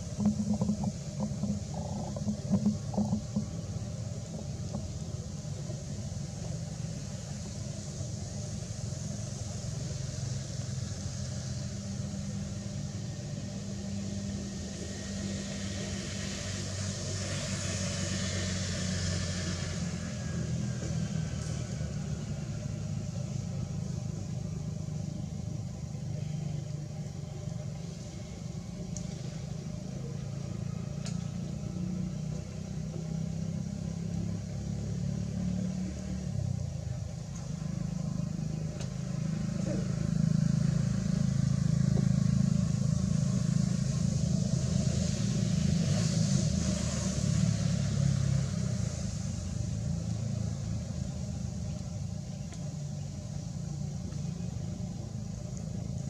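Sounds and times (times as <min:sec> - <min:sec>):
vehicle engines rumbling: 0:00.0 - 0:56.0.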